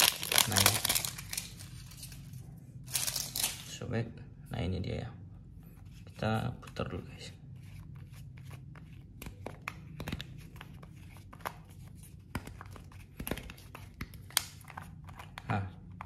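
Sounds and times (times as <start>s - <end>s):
plastic film crackling: 0.0s - 2.2s.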